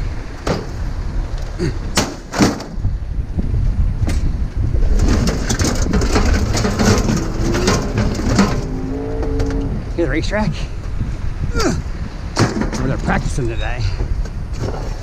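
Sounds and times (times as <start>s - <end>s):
low machinery rumble: 2.8s - 14.5s
scrap metal clattering onto pile: 5.0s - 8.8s.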